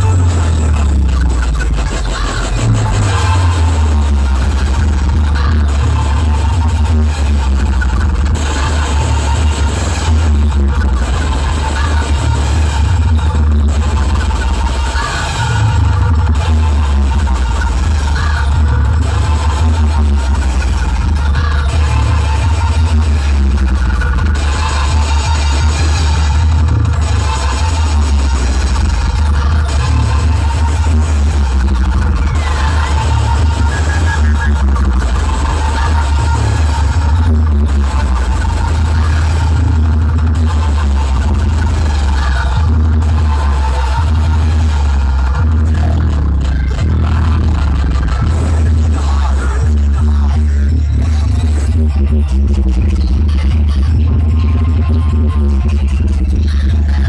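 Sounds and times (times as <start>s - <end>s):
loud electronic dance music: 0.0s - 57.0s.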